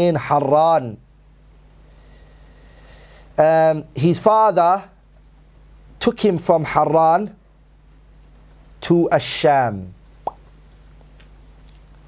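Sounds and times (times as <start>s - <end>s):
faint low room hum: 0.0s - 12.0s
lip smack: 10.2s - 12.0s.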